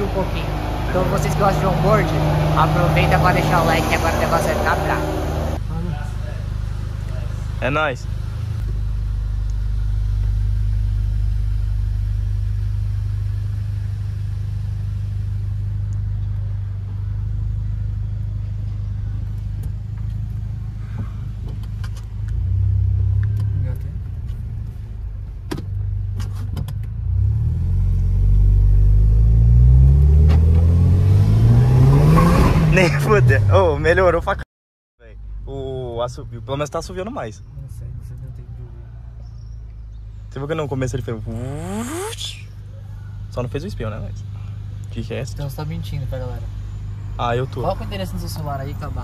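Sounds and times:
car engine droning and accelerating: 0.0 - 34.4, 35.1 - 49.0.

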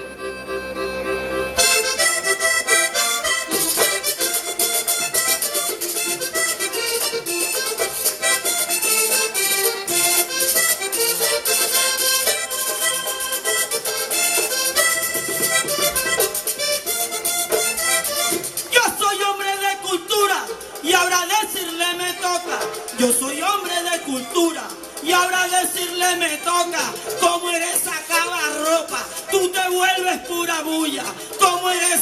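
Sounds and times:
button accordion: 0.0 - 32.0
drum rhythm: 1.6 - 32.0
scraper rhythm: 1.6 - 32.0.

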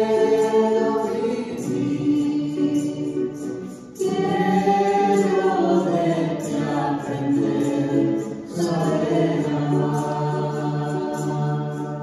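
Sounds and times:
group singing a hymn: 0.0 - 12.0.

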